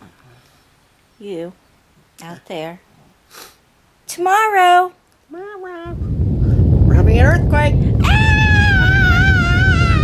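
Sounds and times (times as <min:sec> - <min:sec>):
deep earthquake rumble: 0:05.9 - 0:10.0
person screaming: 0:08.0 - 0:10.0.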